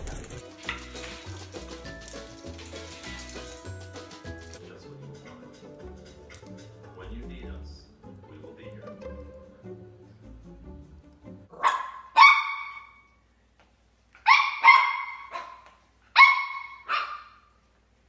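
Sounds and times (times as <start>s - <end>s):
faint music: 0.0s - 11.6s
puppy barking high-pitched yaps: 11.5s - 13.1s, 14.2s - 17.6s.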